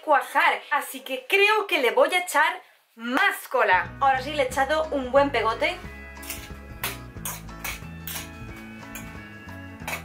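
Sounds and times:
background music with bass line: 0:03.8 - 0:10.0
metal spoon scraping glass bowl: 0:06.2 - 0:06.6, 0:07.2 - 0:09.2, 0:09.8 - 0:10.0.

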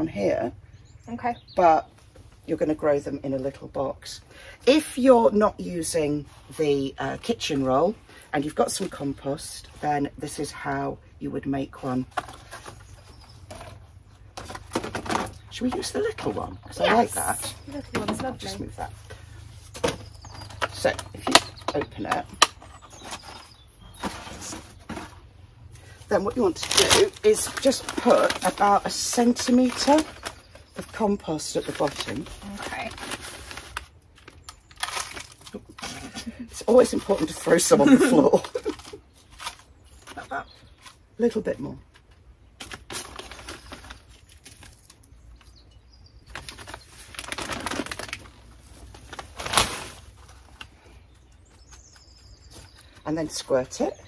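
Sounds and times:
plastic bag rustling: 0:22.3 - 0:41.1, 0:42.6 - 0:45.1, 0:46.2 - 0:53.0
plastic crinkling: 0:25.8 - 0:41.1, 0:41.9 - 0:45.6, 0:46.2 - 0:53.0.

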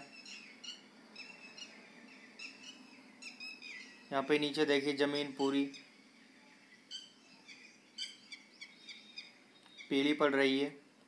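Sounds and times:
small birds chirping: 0:00.0 - 0:10.9.

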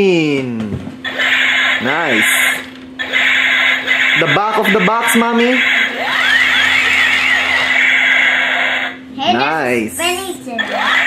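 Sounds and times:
steady hum: 0:00.0 - 0:11.0
warbling electronic toy tones: 0:01.0 - 0:02.4, 0:03.0 - 0:09.0, 0:10.6 - 0:11.0.

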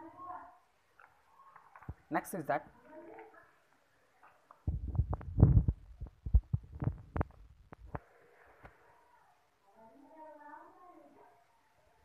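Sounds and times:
microphone handling thumps: 0:04.7 - 0:08.0.

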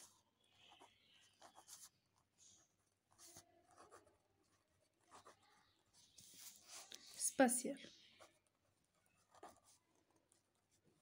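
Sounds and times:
pen scratching on paper: 0:00.0 - 0:07.0, 0:08.1 - 0:11.0.

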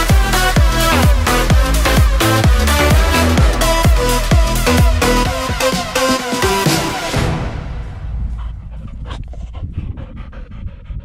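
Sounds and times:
steady low rumble: 0:00.0 - 0:06.0, 0:07.2 - 0:11.0
dog panting: 0:08.0 - 0:11.0.

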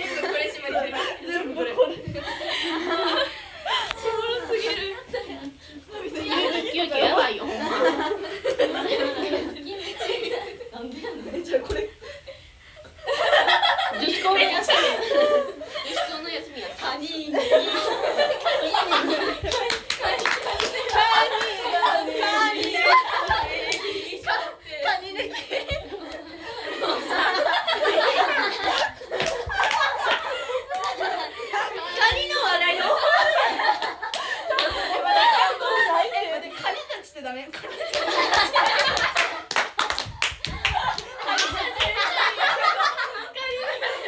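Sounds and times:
excited voices: 0:00.0 - 0:44.0
hands clapping: 0:19.3 - 0:21.6, 0:22.5 - 0:24.0, 0:28.5 - 0:31.1, 0:34.0 - 0:34.9, 0:37.5 - 0:42.4.

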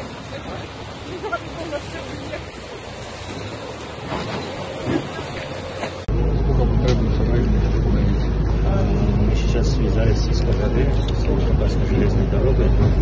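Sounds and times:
people talking: 0:00.0 - 0:02.9, 0:06.1 - 0:13.0
cars moving slowly: 0:00.0 - 0:13.0.

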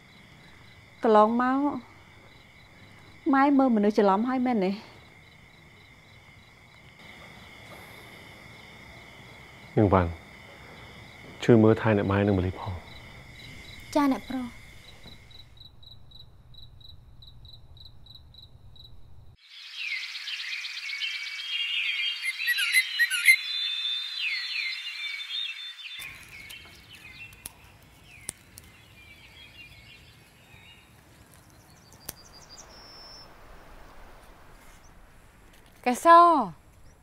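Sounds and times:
cricket chirping: 0:00.0 - 0:37.0
faint insect sounds: 0:00.0 - 0:37.0
birds chirping and chattering: 0:24.2 - 0:33.4.

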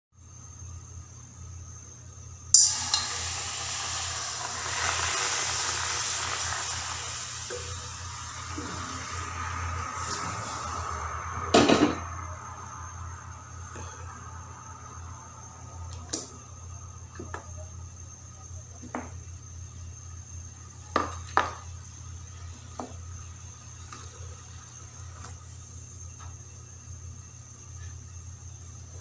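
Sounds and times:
water sizzling in hot wok: 0:02.6 - 0:11.7.

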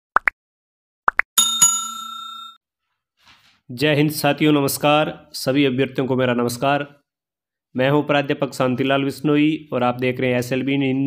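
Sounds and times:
bell-like chime: 0:01.4 - 0:02.6.

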